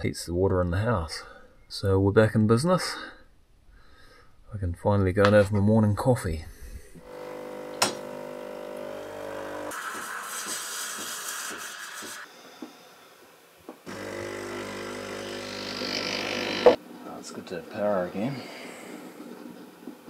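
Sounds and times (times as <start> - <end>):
espresso pump humming: 7.0 - 10.2, 13.9 - 16.8
steam wand hissing: 9.7 - 13.2.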